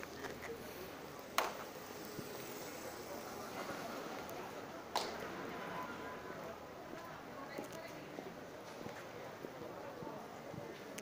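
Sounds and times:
city street background noise: 0.0s - 11.0s.

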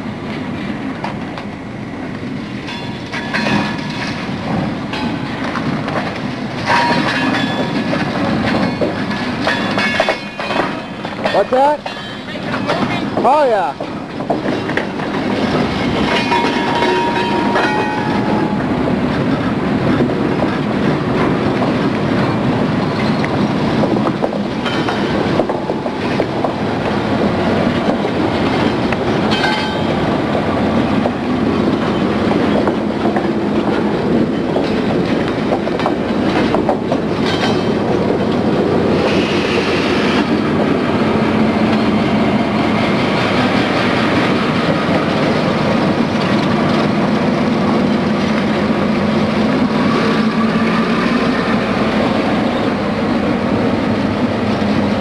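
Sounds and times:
freight train rumbling past: 0.0s - 55.0s
wheels clattering over rails: 2.6s - 55.0s.

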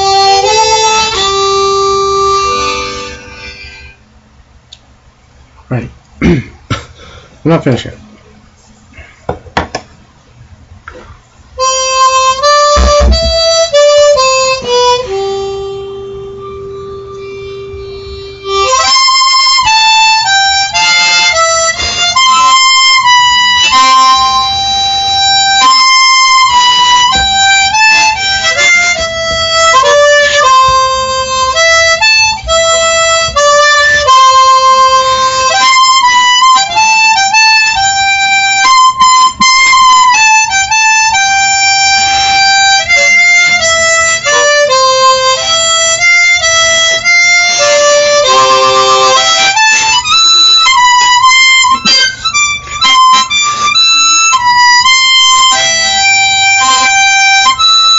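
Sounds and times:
harmonica melody: 0.0s - 4.3s, 11.6s - 57.9s.

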